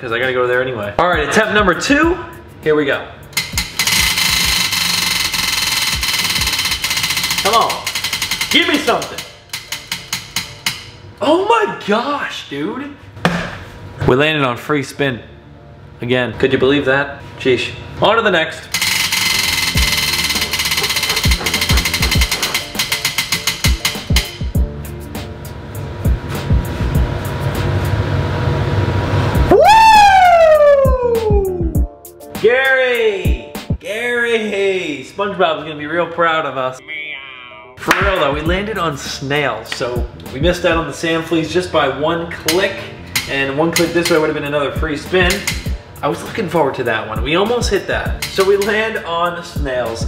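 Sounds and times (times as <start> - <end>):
prize wheel clicking: 3.4 - 10.9, 18.7 - 24.5
background music with a beat: 19.4 - 27.9, 29.4 - 33.8, 37.8 - 40.9, 44.8 - 46.0, 47.2 - 48.8.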